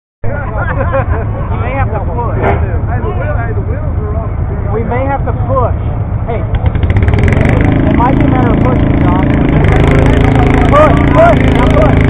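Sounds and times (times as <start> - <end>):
people talking: 0.3 - 6.6, 7.6 - 12.0
low rumble: 0.3 - 12.0.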